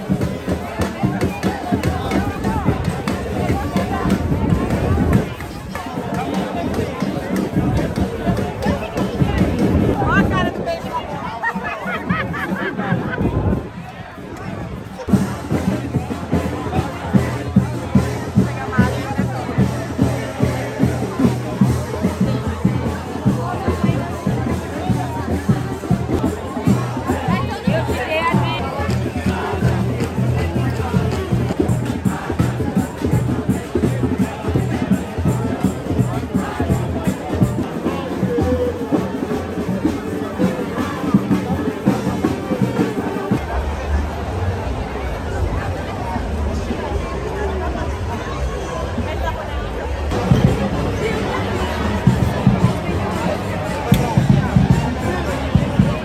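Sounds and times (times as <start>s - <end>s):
thumping drum beat: 0.0s - 10.6s, 15.0s - 43.4s, 50.1s - 56.0s
crowd chatter: 0.0s - 56.0s
street band music: 0.0s - 56.0s.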